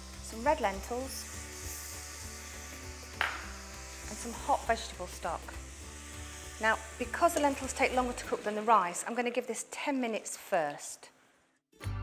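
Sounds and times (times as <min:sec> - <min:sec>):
background music: 0:00.0 - 0:08.9, 0:11.7 - 0:12.0
onion and curry paste sizzling: 0:00.0 - 0:11.6.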